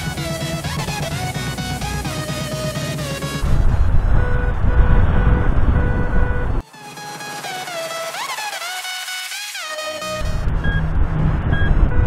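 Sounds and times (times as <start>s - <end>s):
electronic background music: 0.0s - 12.0s
wind noise on microphone: 3.4s - 6.6s, 10.2s - 12.0s.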